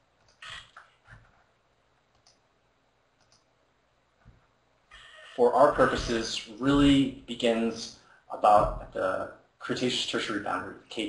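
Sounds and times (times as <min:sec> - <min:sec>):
small sharp clicks: 0:02.1 - 0:02.4.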